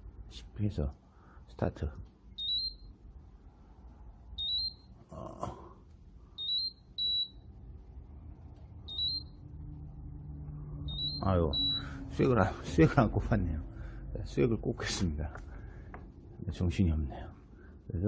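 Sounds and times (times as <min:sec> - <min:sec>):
infusion pump alarm beeps: 0:02.3 - 0:02.9, 0:04.4 - 0:04.9, 0:06.4 - 0:07.5, 0:08.9 - 0:09.4, 0:10.9 - 0:12.0.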